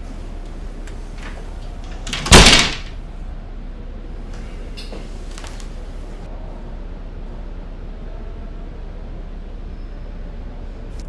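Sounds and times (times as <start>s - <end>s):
door shutting thud: 1.3s - 3.0s.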